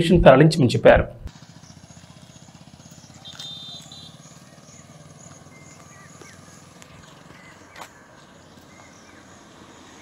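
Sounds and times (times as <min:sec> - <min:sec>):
engine idling faintly: 0:01.3 - 0:10.0.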